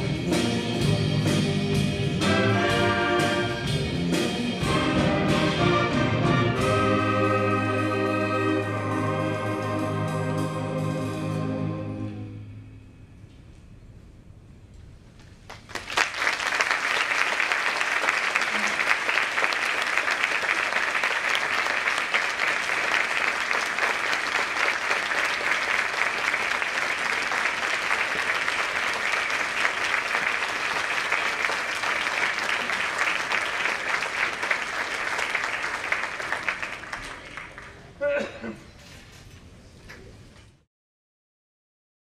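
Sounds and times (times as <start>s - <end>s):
audience applauding: 15.5s - 38.0s.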